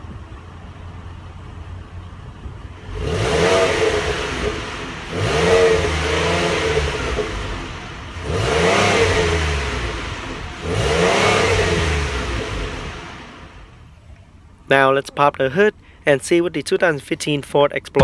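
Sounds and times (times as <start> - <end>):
car engine revving: 2.6 - 13.8.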